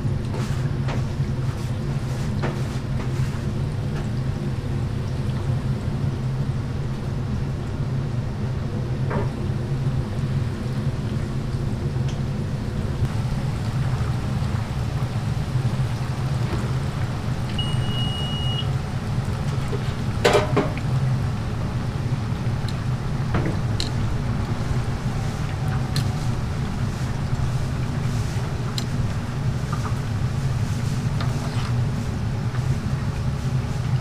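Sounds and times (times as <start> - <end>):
oil sizzling in fryer: 0.0 - 34.0
short high beep: 17.6 - 18.7.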